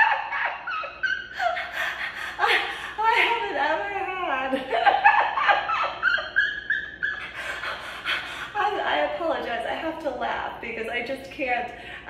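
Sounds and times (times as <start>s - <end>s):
woman giggling: 0.0s - 8.6s.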